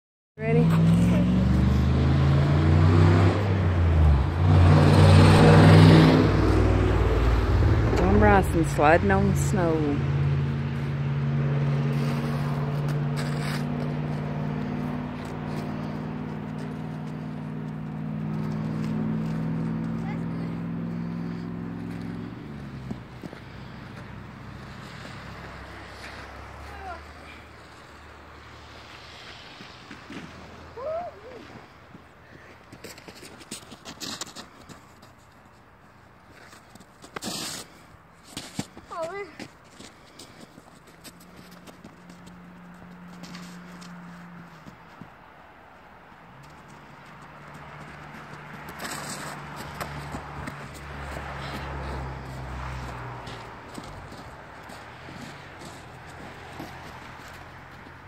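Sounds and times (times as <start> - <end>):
vehicle engine running: 3.5 - 30.6, 38.4 - 45.1, 46.2 - 58.0.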